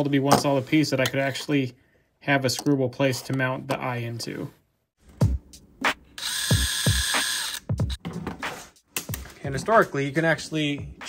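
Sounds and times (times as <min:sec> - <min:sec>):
power drill running: 0:06.2 - 0:07.7.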